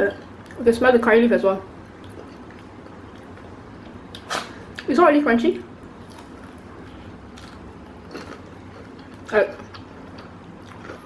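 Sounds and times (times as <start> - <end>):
fried chicken crunching: 6.0 - 11.0.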